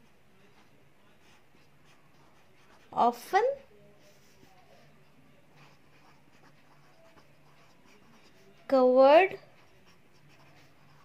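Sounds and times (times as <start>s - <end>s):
pen scratching on paper: 0.4s - 11.0s.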